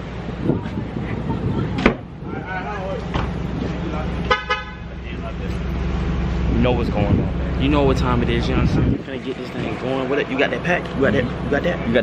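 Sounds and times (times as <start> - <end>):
car horn beeps: 4.2 - 5.0.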